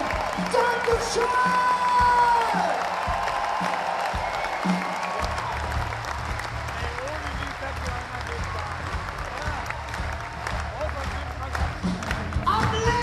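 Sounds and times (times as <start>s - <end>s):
audience applauding: 0.0s - 13.0s.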